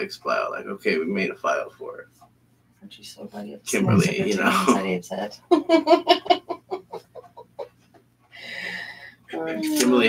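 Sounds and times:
person laughing: 3.9 - 4.8, 5.5 - 7.7.

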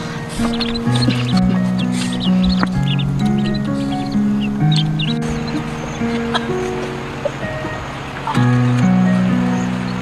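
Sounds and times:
chicks peeping: 0.0 - 10.0
sustained background music: 0.0 - 10.0.

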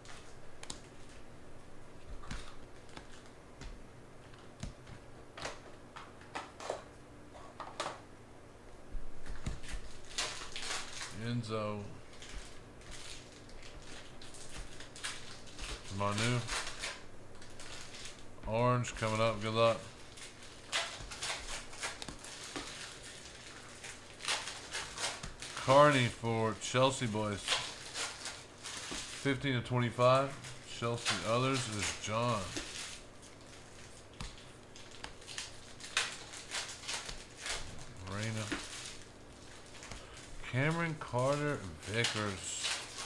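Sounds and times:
trading cards flipped by hand: 2.0 - 6.5, 20.2 - 26.1, 30.7 - 40.2.

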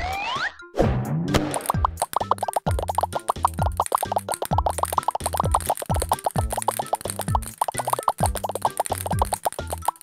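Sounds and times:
cartoon plop sound effects: 1.3 - 10.0
children's music: 1.6 - 10.0.

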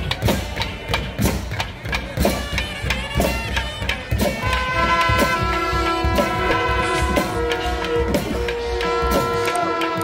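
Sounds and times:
drums struck in steady rhythm: 0.0 - 10.0
held wind instrument tones: 2.2 - 10.0.

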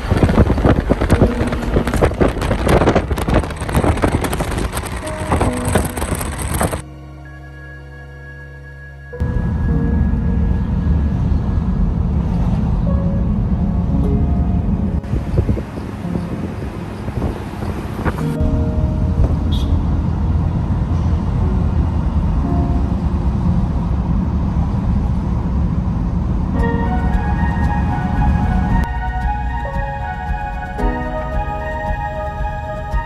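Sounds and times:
car road and engine rumble: 0.0 - 7.0, 9.1 - 33.0
faint background music: 26.6 - 33.0.

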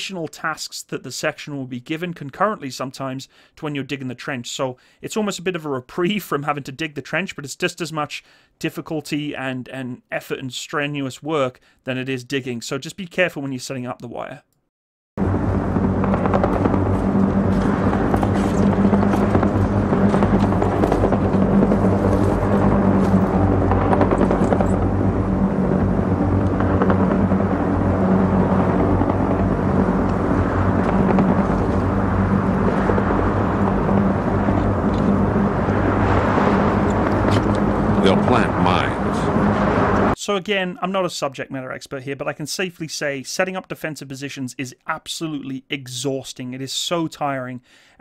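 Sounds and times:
rough noisy layer: 15.2 - 40.2
steady low drone: 15.2 - 40.2.

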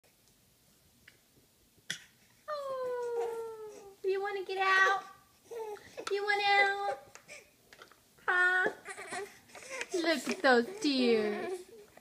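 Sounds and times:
baby whining cry: 2.5 - 4.0, 4.8 - 7.5, 8.3 - 10.0.

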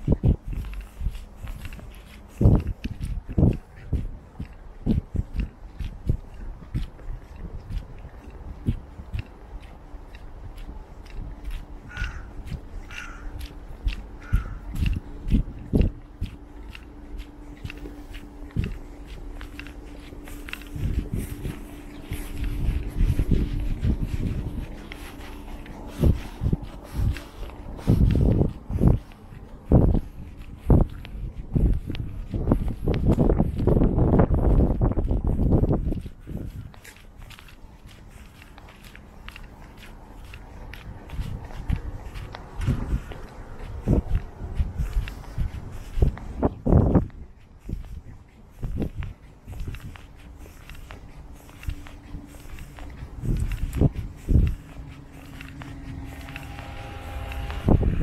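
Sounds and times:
steady footsteps: 0.0 - 58.0
bird calling: 11.9 - 13.4, 14.2 - 14.8.

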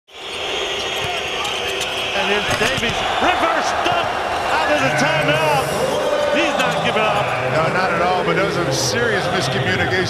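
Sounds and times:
arena crowd noise: 0.1 - 10.0.

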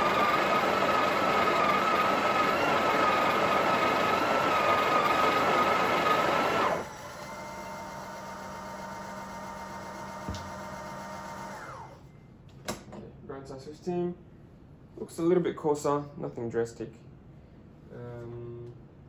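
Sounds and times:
coffee grinder whining: 0.0 - 12.0
quiet mechanical hum: 7.0 - 19.0.

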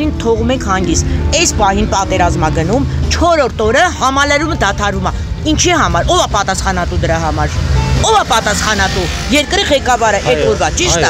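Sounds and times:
street traffic rumble: 0.0 - 11.0
woman talking: 0.0 - 11.0.

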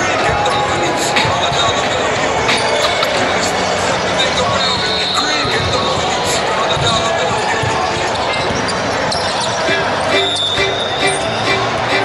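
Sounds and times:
voices of players and spectators: 0.0 - 12.0.

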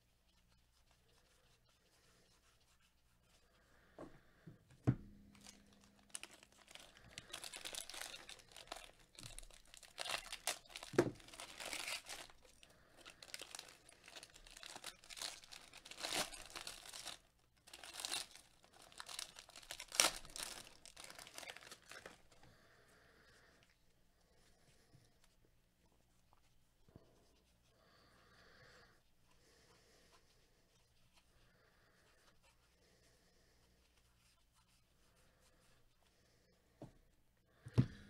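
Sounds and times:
soft thump: 4.0 - 5.2
foil wrapper crinkling: 5.2 - 22.3.

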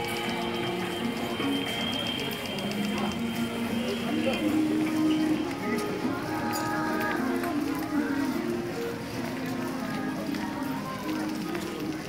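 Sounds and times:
people walking outdoors: 0.0 - 12.0.

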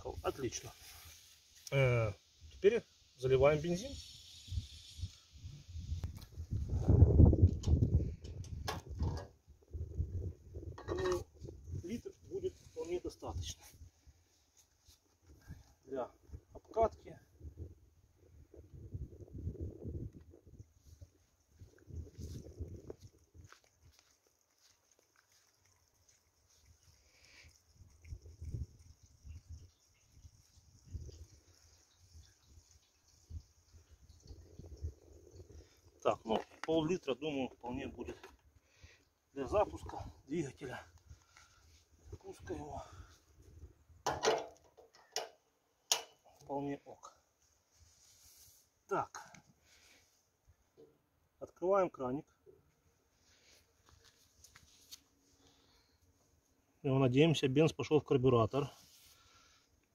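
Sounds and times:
canister clicks and knocks: 44.1 - 46.2.

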